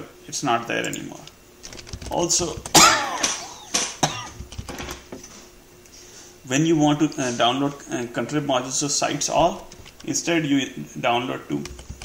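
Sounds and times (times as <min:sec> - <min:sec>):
man coughing: 0:02.8 - 0:04.4.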